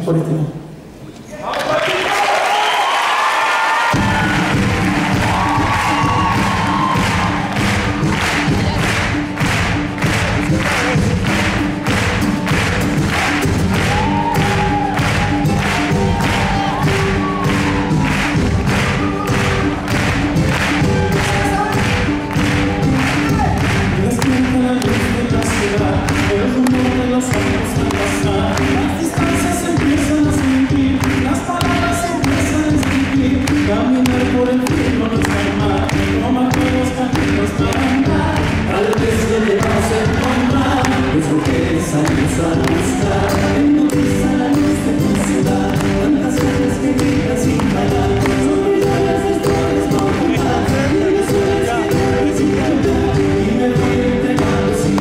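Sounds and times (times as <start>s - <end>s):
live folk-pop band: 3.7s - 55.0s
bass and drums beat: 3.8s - 55.0s.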